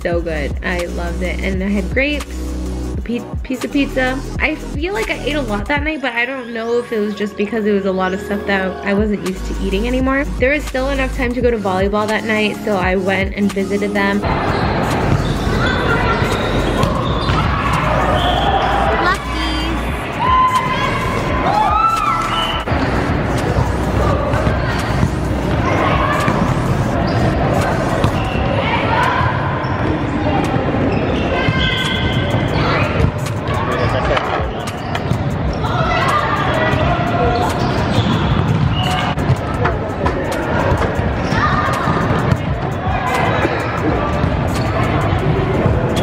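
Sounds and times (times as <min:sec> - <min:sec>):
players calling out: 0:12.1 - 0:46.0
echoing hall din: 0:14.2 - 0:46.0.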